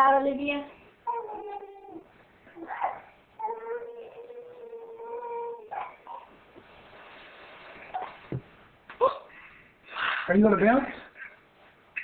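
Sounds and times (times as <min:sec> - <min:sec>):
baby's steady pitched vocal tone: 0:01.0 - 0:06.4.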